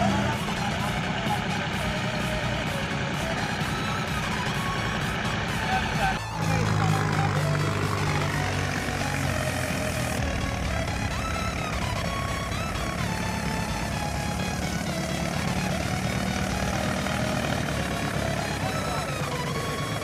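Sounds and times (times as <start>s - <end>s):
music playing: 0.0s - 20.0s
tractor diesel engine running: 0.0s - 20.0s.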